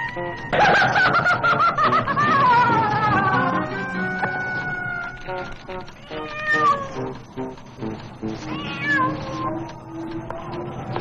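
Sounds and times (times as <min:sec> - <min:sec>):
film music with low notes: 0:00.0 - 0:11.0
cat meowing: 0:06.0 - 0:07.0, 0:08.4 - 0:09.7.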